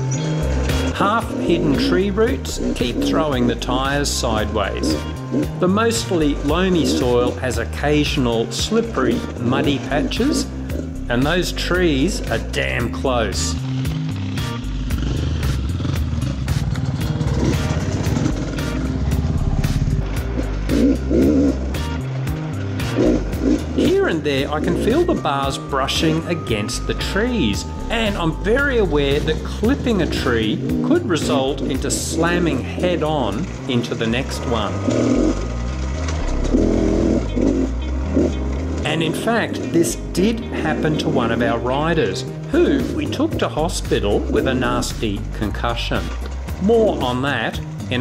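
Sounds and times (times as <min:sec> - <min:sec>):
background music with steady beat: 0:00.0 - 0:48.0
dirt bike engine revving: 0:00.0 - 0:48.0.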